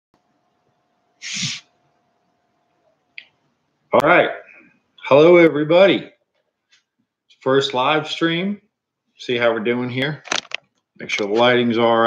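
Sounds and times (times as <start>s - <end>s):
man sneezing or coughing: 1.2s - 1.6s.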